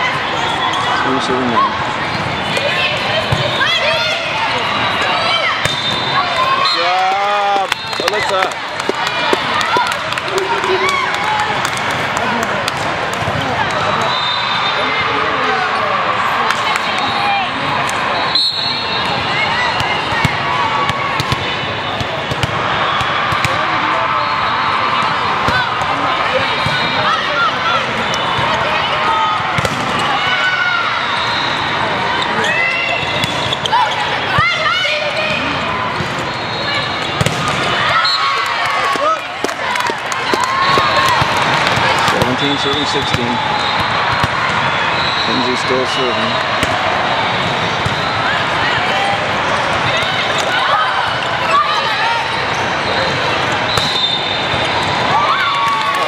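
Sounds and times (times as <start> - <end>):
players and spectators shouting: 0.0 - 56.0
volleyball being hit and bouncing: 19.8 - 23.7, 29.4 - 30.2, 33.1 - 34.5, 37.0 - 37.8, 39.0 - 44.7, 46.5 - 48.0.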